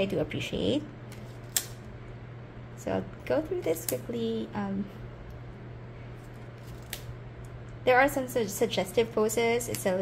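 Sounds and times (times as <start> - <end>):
steady low hum: 0.0 - 10.0
cards rustling: 6.2 - 7.1.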